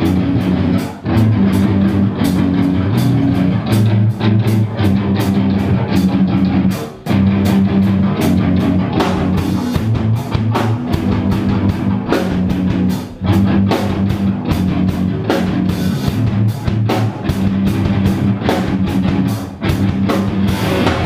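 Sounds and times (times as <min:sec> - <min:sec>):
hardcore band playing loud: 0:00.0 - 0:21.0.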